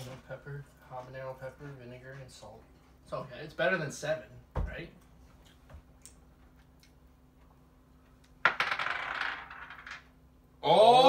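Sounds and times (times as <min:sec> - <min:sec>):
dice clattering on a table: 0:08.4 - 0:10.2.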